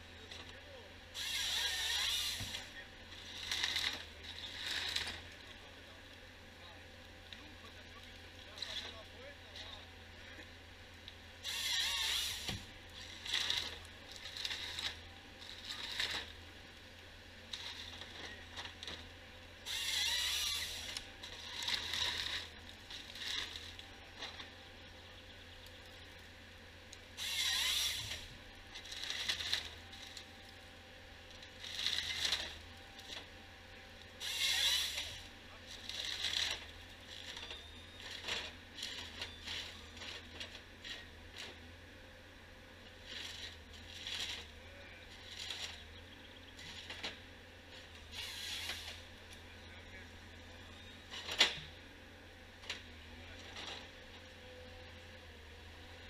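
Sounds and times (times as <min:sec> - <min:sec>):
low diesel engine hum: 0:00.0 - 0:56.0
branches cracking and scraping: 0:01.2 - 0:05.7, 0:11.1 - 0:41.6, 0:42.9 - 0:49.5.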